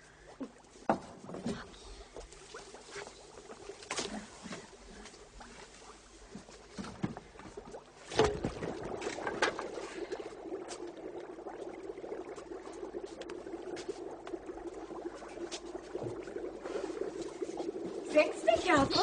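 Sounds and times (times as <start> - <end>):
soup bubbling in a pot: 0.0 - 19.0.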